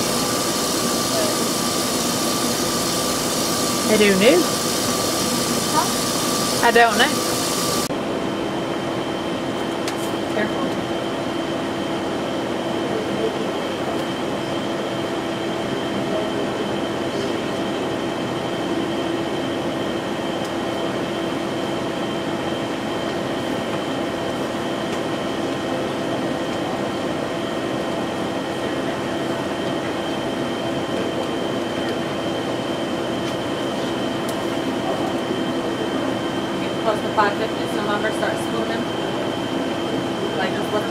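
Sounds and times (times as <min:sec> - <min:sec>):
kitchen machinery humming: 0:00.0 - 0:40.9.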